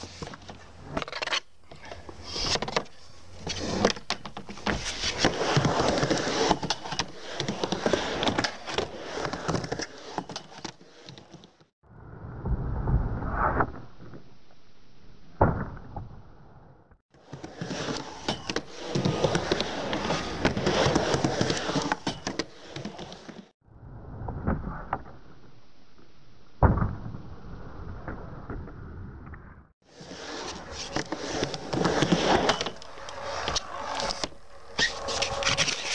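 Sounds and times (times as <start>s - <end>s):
skateboard wheels rolling on concrete: 0.0s - 14.3s, 17.1s - 26.1s, 27.3s - 35.9s.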